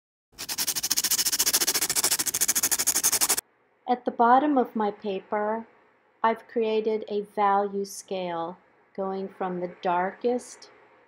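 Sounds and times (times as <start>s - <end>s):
pencil rasping on sandpaper: 0.4s - 3.4s.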